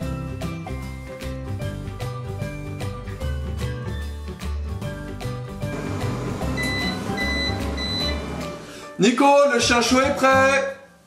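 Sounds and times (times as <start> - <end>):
background music: 0.0 - 11.0
microwave beeping: 5.7 - 8.7.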